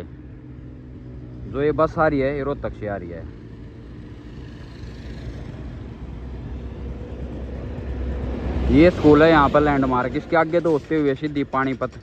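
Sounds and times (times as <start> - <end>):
bus engine rumble: 0.0 - 12.0
tyre noise on road: 0.0 - 12.0.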